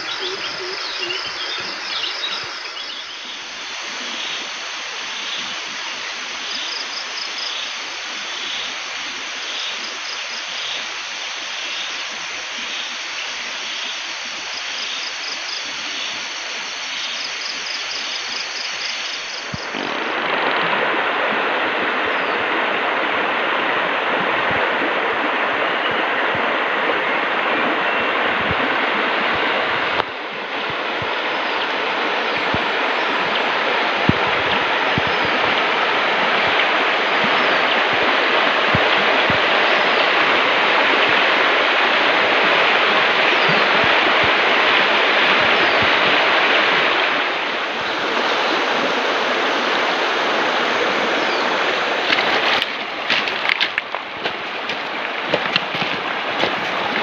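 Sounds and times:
insects buzzing: 0.0s - 20.3s
river flowing over stones: 0.0s - 57.0s.

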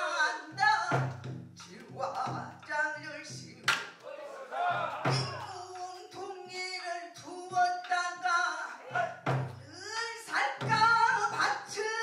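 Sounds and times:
woman singing with vibrato: 9.7s - 12.0s.

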